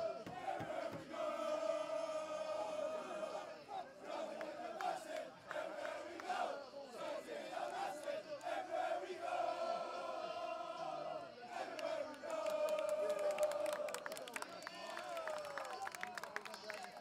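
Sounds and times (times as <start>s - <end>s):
men chanting and shouting: 0.0s - 14.3s.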